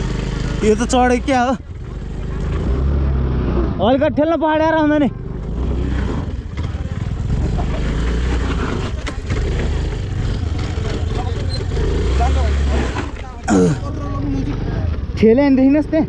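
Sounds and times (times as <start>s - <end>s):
scooter engine rumbling: 0.0s - 15.8s.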